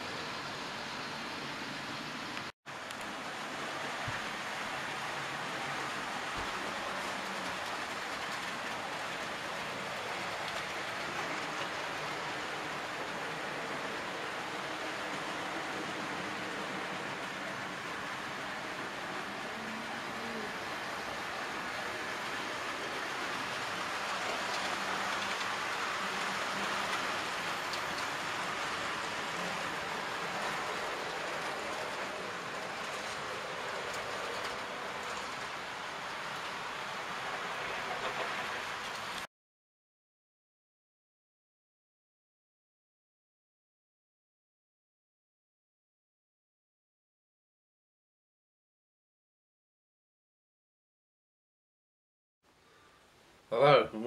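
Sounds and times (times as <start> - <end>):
model trains running on track: 0.0 - 39.3.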